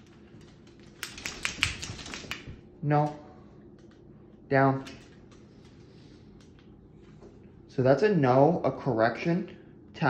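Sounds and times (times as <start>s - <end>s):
dog claws clicking on wood floor: 0.0s - 4.0s, 4.8s - 6.7s.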